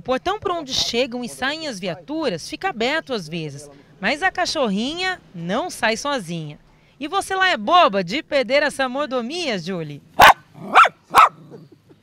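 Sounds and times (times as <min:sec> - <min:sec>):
small dog barking: 0:10.2 - 0:11.6.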